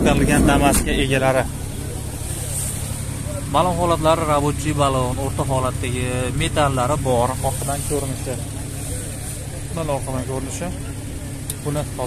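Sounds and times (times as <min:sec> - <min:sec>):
people talking: 0:00.0 - 0:12.0
steady low hum: 0:00.0 - 0:12.0.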